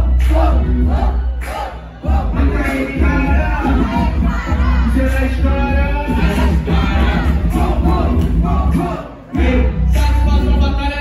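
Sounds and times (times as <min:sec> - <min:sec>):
hip-hop beat with heavy bass: 0:00.0 - 0:11.0.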